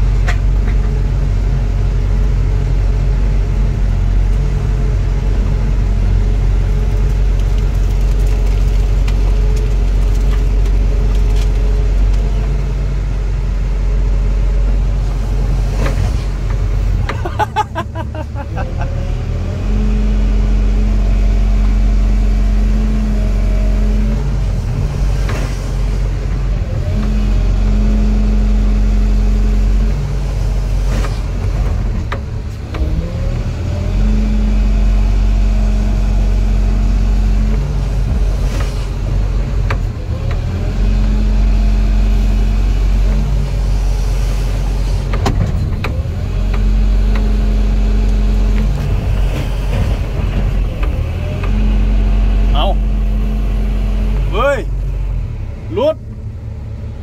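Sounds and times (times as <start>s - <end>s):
excavator diesel engine and hydraulics: 0.0s - 57.0s.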